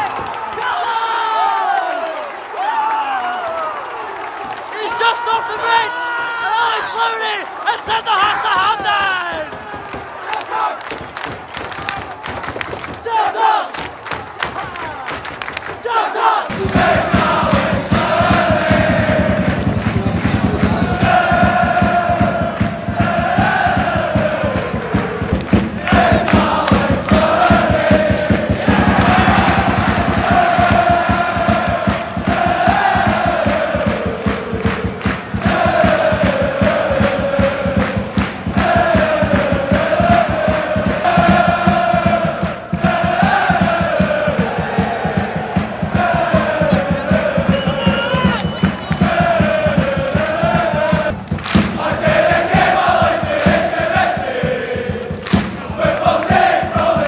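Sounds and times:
football crowd noise: 0:00.0 - 0:57.0
crowd singing a chant: 0:06.5 - 0:11.1, 0:13.0 - 0:13.9, 0:15.8 - 0:57.0.

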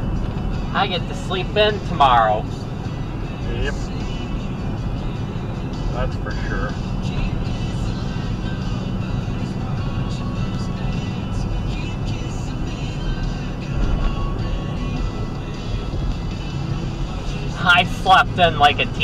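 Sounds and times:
car road and engine noise: 0:00.0 - 0:19.0.

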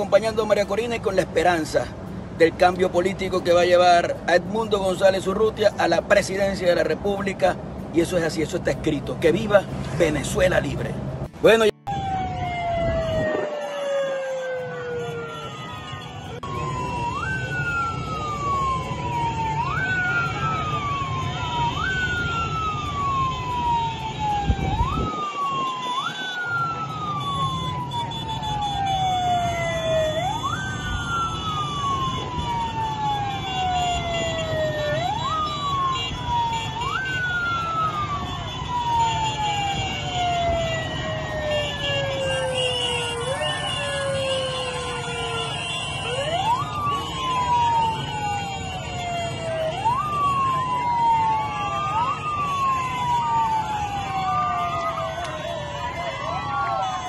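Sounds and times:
siren wailing: 0:11.6 - 0:57.0.

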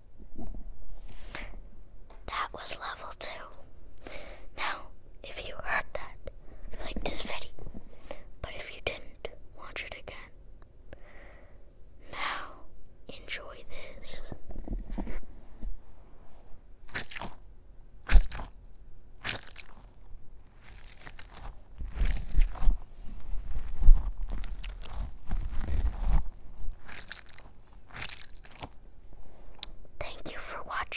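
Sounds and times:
crunching and crackling on microphone: 0:16.9 - 0:17.4, 0:18.0 - 0:29.7.

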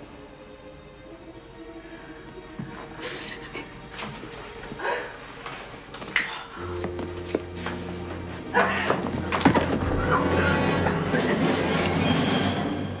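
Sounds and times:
film score with low sustained notes: 0:00.0 - 0:13.0.

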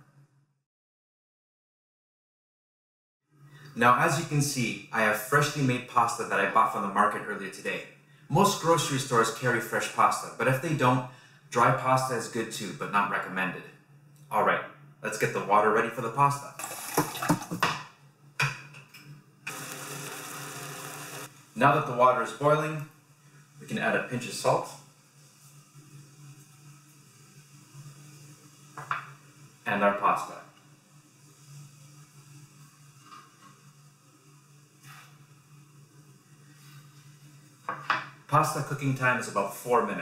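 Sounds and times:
water boiling in a pot: 0:16.5 - 0:17.7, 0:19.5 - 0:22.4, 0:23.0 - 0:39.1.

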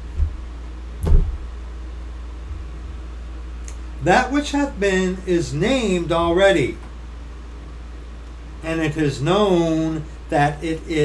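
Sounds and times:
steady low hum: 0:00.0 - 0:11.0
desk being bumped: 0:01.0 - 0:01.5.

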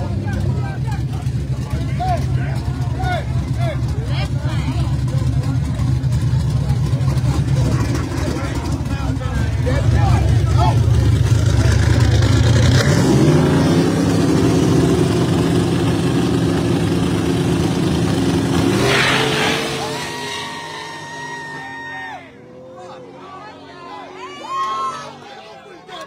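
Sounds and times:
car engines revving: 0:00.0 - 0:26.0
cars launching and pulling away: 0:00.0 - 0:26.0.

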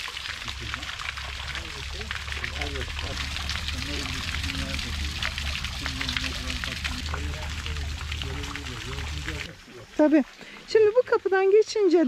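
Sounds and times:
water pouring into pond: 0:00.0 - 0:11.8.

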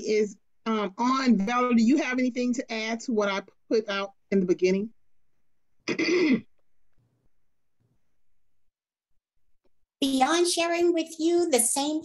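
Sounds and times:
person clearing throat: 0:05.8 - 0:06.6.

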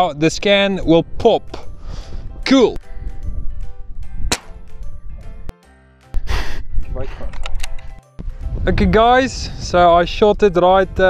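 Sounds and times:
wind rumbling on microphone: 0:00.3 - 0:05.5, 0:06.5 - 0:11.0
air rifle shot: 0:04.3 - 0:04.6.

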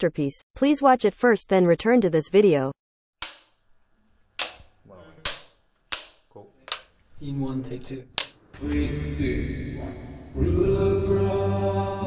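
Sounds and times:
clapperboard snapping shut: 0:04.4 - 0:06.9.

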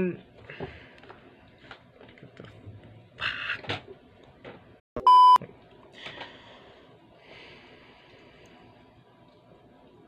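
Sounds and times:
electronic test-tone beep: 0:05.0 - 0:05.4.

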